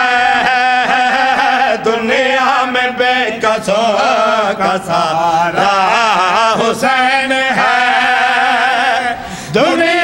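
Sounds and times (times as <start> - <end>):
men chanting together: 0.0 - 10.0.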